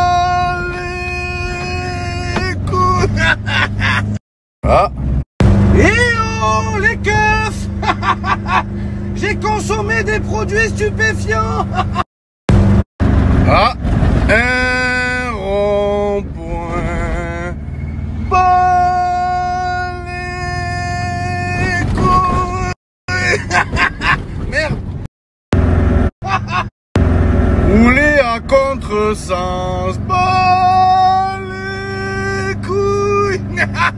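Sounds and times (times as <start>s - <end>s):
car engine and road rumble: 0.0s - 33.9s.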